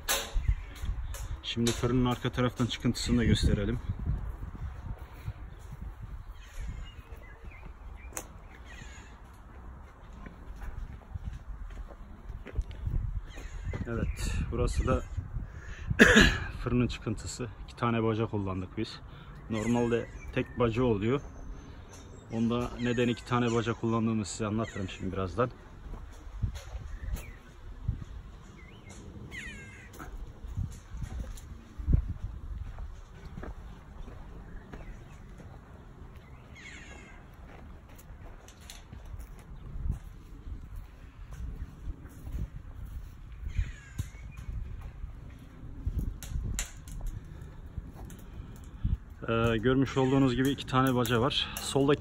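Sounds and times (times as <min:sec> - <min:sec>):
wind rumbling on microphone: 0:00.0 - 0:17.7, 0:24.6 - 0:52.0
footsteps on soil: 0:03.6 - 0:14.0, 0:24.8 - 0:29.1, 0:29.7 - 0:48.4
faint bird calls: 0:06.2 - 0:09.6, 0:13.2 - 0:15.8, 0:28.4 - 0:30.6, 0:33.6 - 0:37.6, 0:43.4 - 0:45.6.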